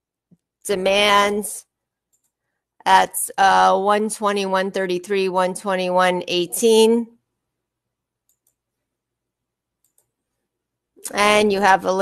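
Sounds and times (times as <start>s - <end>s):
faint computer mouse clicks: 8.2s - 8.6s, 9.8s - 10.3s.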